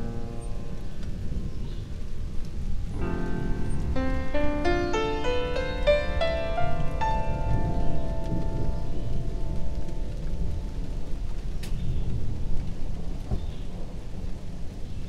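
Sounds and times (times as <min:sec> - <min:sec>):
piano chord: 0:00.0 - 0:01.9, 0:02.9 - 0:11.7
rain: 0:00.0 - 0:15.0
thunder rumbling: 0:00.0 - 0:15.0.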